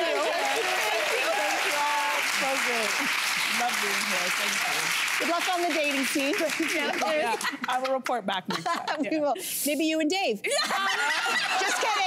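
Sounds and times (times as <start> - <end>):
audience applauding: 0.0 - 7.8
audience laughter: 10.5 - 12.0.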